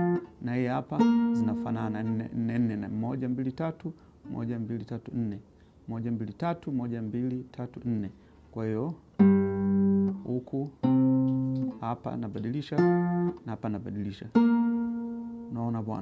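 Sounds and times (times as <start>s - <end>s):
acoustic guitar plucked notes: 0.0s - 3.5s, 9.2s - 16.0s.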